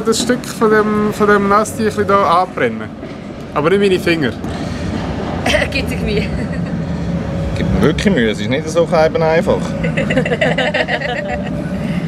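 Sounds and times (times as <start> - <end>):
low background hum: 0.0 - 12.0
man laughing: 9.8 - 11.8.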